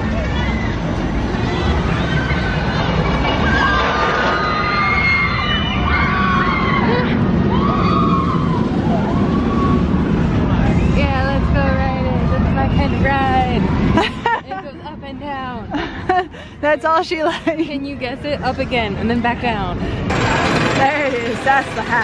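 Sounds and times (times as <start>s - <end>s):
roller coaster rumbling on track: 0.0s - 22.0s.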